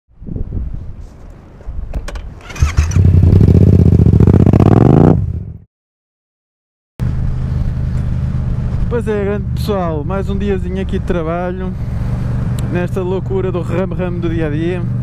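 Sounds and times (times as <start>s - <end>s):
motorcycle engine revving: 2.4s - 5.6s.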